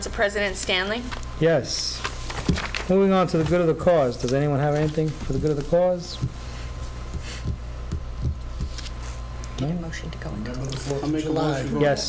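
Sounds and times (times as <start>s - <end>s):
low electrical hum: 0.0s - 12.0s
papers rustling: 1.1s - 7.5s
soft thumps on a desk: 6.2s - 6.4s.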